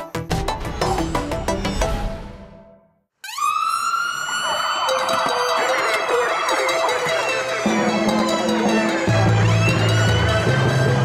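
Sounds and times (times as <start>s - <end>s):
ambulance siren wailing: 3.2s - 11.0s.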